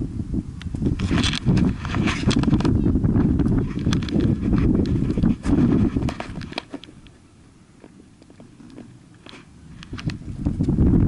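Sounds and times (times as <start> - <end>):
wind and handling rumble on microphone: 0.0 - 11.0.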